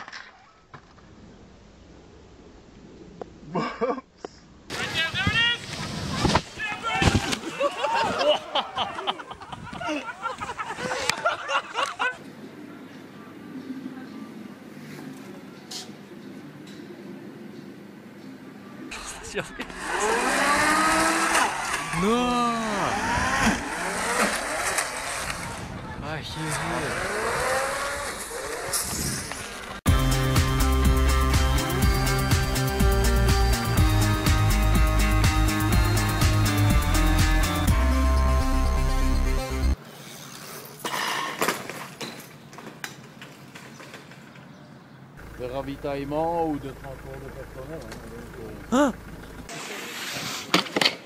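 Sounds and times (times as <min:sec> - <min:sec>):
street background noise: 0:00.0 - 0:29.9, 0:38.6 - 0:51.0
bicycle crashing onto street: 0:05.6 - 0:07.7, 0:40.6 - 0:44.4
vehicle engine revving in snow: 0:18.9 - 0:25.7, 0:26.3 - 0:29.8.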